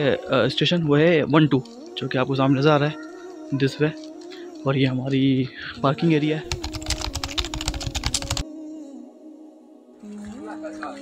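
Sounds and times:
keyboard typing clicks: 0:06.5 - 0:08.4.

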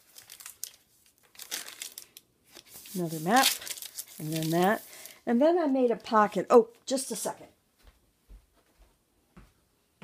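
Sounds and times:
paper pages turning and crinkling: 0:00.0 - 0:05.2.

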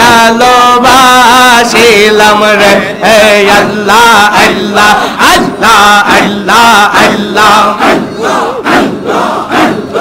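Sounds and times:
crowd of men chanting: 0:00.0 - 0:10.0.

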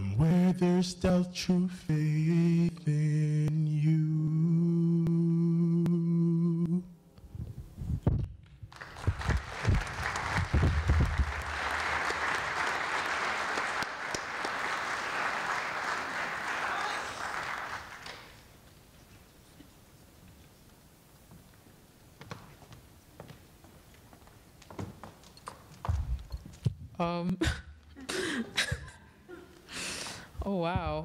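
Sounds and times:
audience applauding: 0:08.7 - 0:18.6.

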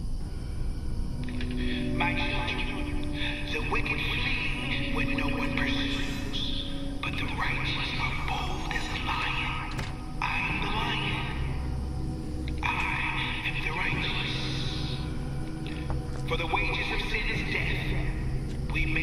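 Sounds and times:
low background music: 0:00.0 - 0:19.0
preacher speaking: 0:01.3 - 0:11.6, 0:12.5 - 0:15.1, 0:16.3 - 0:19.0.

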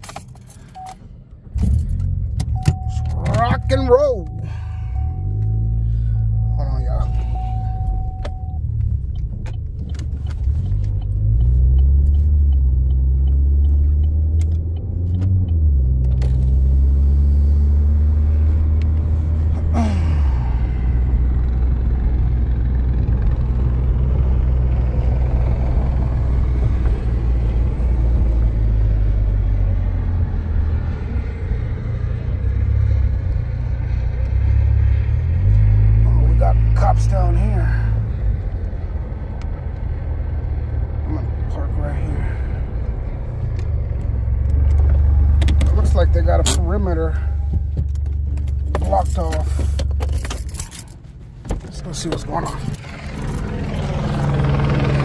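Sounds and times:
low car engine rumble: 0:00.0 - 0:55.0.

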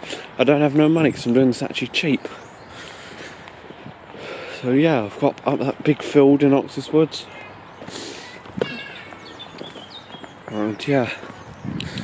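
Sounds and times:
birds chirping: 0:00.0 - 0:12.0
footsteps on dirt path: 0:00.0 - 0:12.0.

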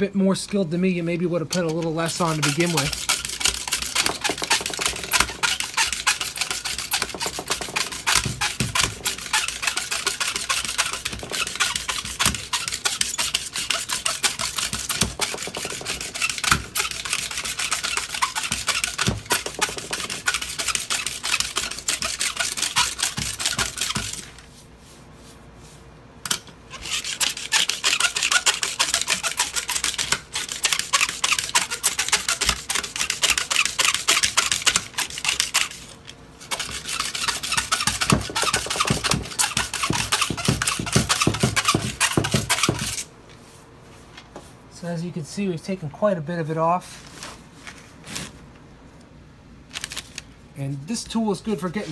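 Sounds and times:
razor scraper scraping stone: 0:00.5 - 0:24.4, 0:26.3 - 0:43.1.

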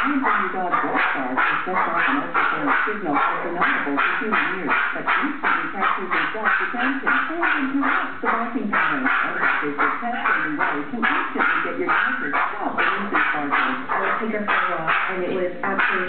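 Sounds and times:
small dog barking rapidly: 0:00.0 - 0:16.0.

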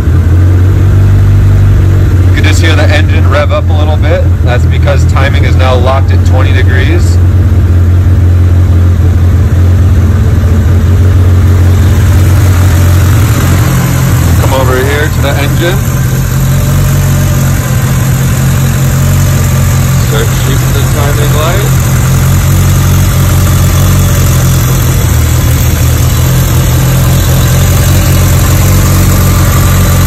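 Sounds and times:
car engine idling: 0:00.0 - 0:30.0.

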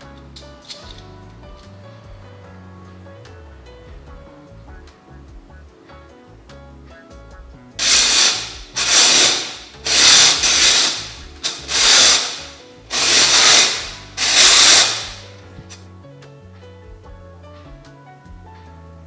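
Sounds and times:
background music: 0:00.0 - 0:19.0
plastic knitting machine strokes: 0:07.8 - 0:15.3.

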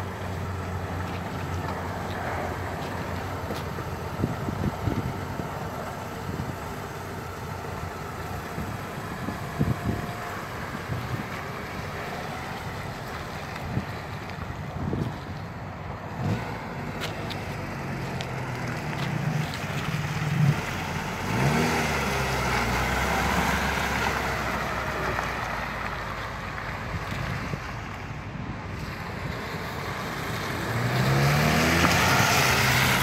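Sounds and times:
car engine running: 0:00.0 - 0:15.4
tyres rolling on gravel: 0:00.0 - 0:28.0
car engine revving: 0:16.1 - 0:25.8, 0:29.0 - 0:33.0.

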